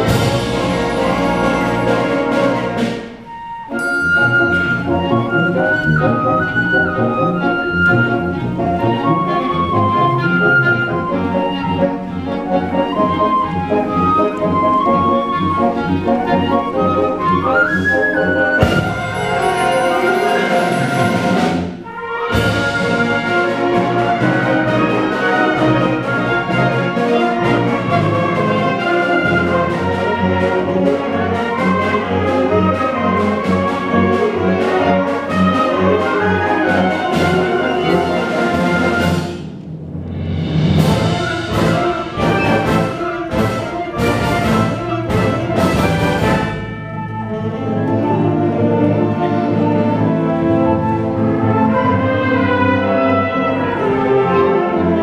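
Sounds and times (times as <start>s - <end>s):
accented rhythmic band hits: 0.0s - 10.0s, 18.2s - 48.6s
wind band playing: 0.0s - 55.0s.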